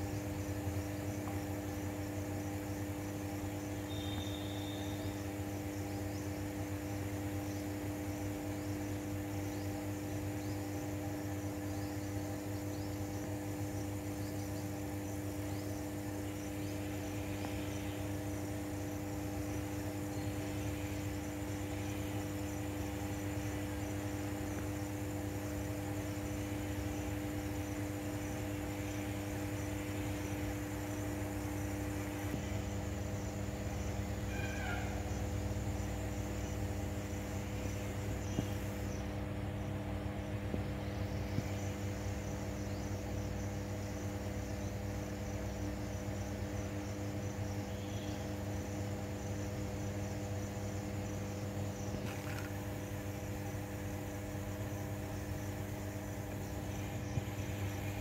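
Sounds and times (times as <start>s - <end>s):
insects chirping: 0.0s - 58.0s
low electrical hum: 0.0s - 58.0s.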